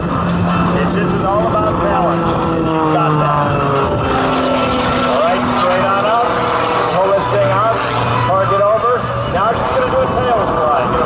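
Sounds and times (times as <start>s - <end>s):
plane engine and propeller: 0.0s - 11.0s.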